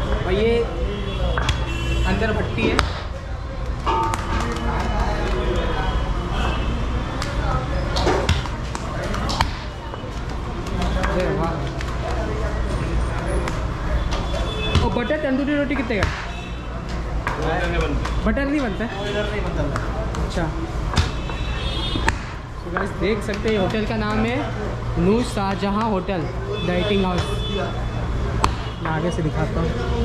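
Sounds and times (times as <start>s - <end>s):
eatery chatter: 0.0s - 30.0s.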